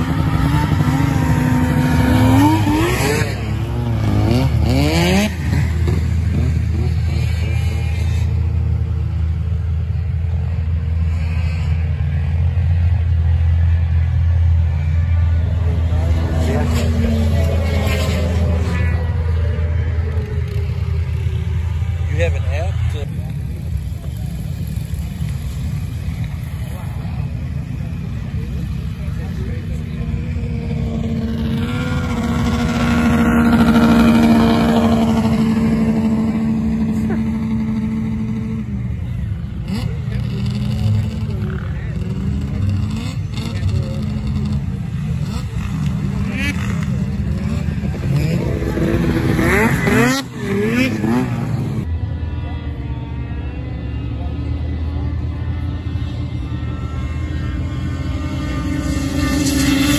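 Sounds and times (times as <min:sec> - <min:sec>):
engines revving: 0:00.0 - 0:59.9
vehicle engines running: 0:00.0 - 0:59.9.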